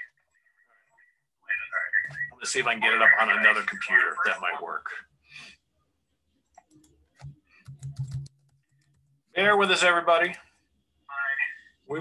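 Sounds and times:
keyboard and mouse clicks: 6.5 - 9.1.

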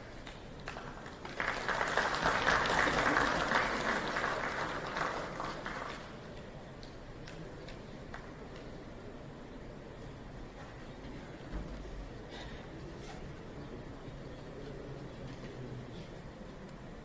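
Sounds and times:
audience applause in large hall: 0.0 - 8.6
scattered single claps: 0.2 - 8.8.

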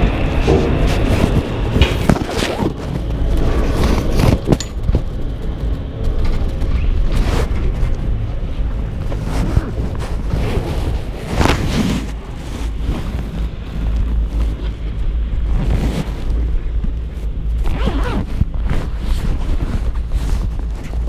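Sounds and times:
rustling and rubbing on microphone: 0.0 - 21.0
steady low rumble: 0.0 - 21.0.

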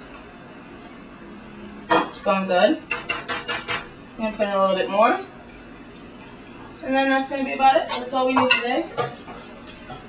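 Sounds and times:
faint background hum with hiss: 0.0 - 10.0.

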